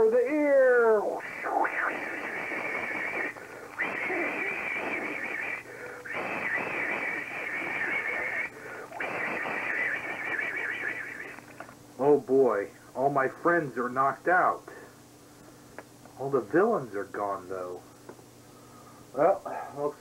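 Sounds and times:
person blowing into microphone: 1.2 - 11.5.

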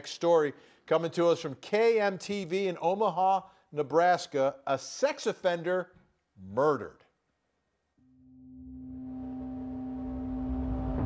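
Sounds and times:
sustained low tone: 8.0 - 11.0
deep rumble: 8.4 - 11.0.

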